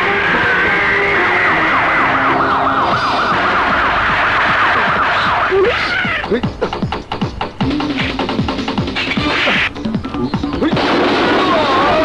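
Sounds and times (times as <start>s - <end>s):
siren wailing yelp: 0.0s - 6.2s
action film music: 0.0s - 10.9s.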